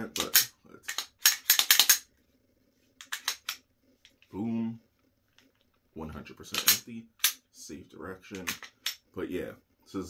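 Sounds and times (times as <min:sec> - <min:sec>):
pistol slide metallic clicks: 0:00.2 - 0:02.0, 0:06.6 - 0:07.4.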